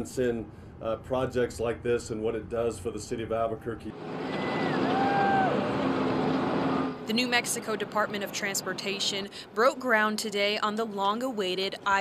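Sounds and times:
rising and falling whine: 2.0s - 9.0s
diesel engines under load: 3.9s - 9.6s.

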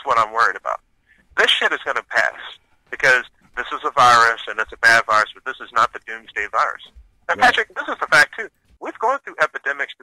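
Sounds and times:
man talking: 1.4s - 8.3s.

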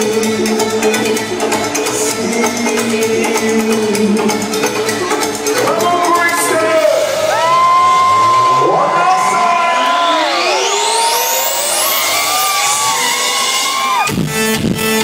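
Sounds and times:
pounding kick drum and bass: 0.0s - 15.0s
held synthesizer tones and sweeps: 7.0s - 13.7s
crowd cheering: 7.0s - 14.2s.

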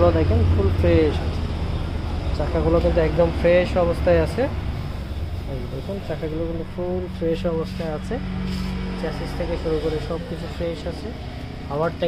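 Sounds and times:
steady low hum: 0.0s - 12.0s
man speaking: 5.4s - 8.3s, 9.0s - 12.0s.

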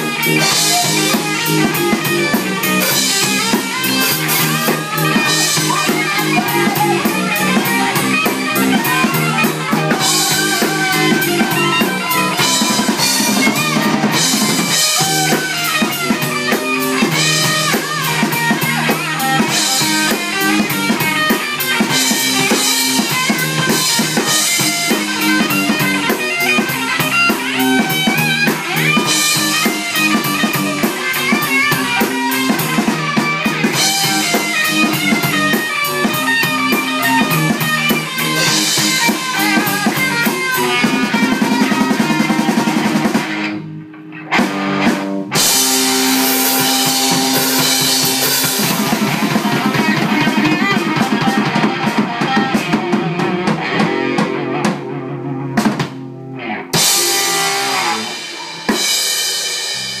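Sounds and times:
fast hi-hat beat: 0.0s - 43.2s, 45.4s - 51.8s
live band playing: 0.0s - 60.0s.

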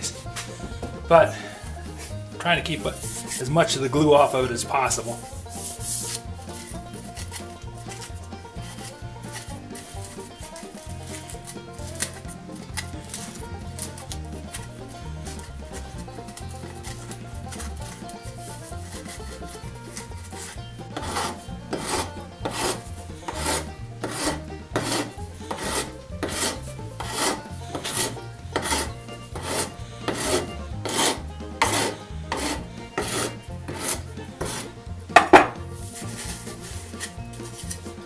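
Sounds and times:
metal file scraping plastic pipe: 0.0s - 38.0s
sharp knock: 35.2s - 35.6s.

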